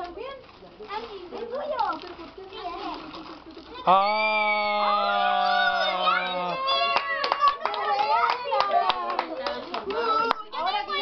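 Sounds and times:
children talking and exclaiming: 0.0 - 11.0.

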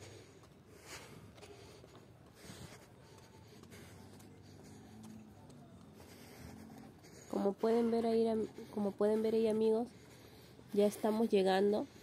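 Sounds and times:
scuffing near microphone: 0.0 - 11.7
footsteps on pavement: 0.0 - 12.0
quiet street ambience: 0.0 - 12.0.

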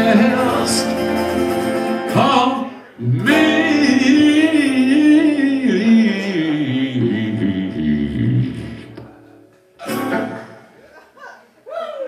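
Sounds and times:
person singing: 0.0 - 1.2, 2.0 - 9.2
live band with guitars and bass: 0.0 - 10.9.

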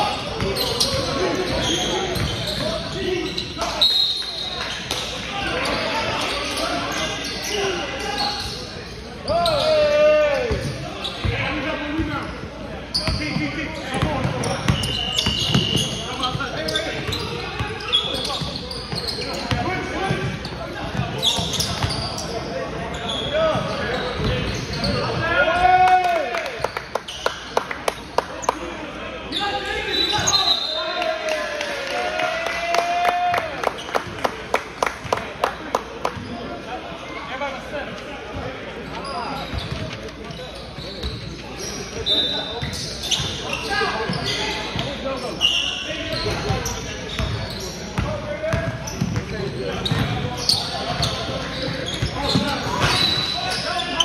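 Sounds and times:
sneakers squeaking: 0.0 - 25.6, 26.6 - 31.0, 35.8 - 37.0, 37.6 - 54.0.

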